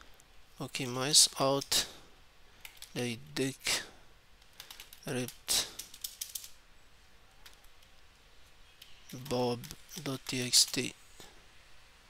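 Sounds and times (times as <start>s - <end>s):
breath: 3.8s - 5.0s.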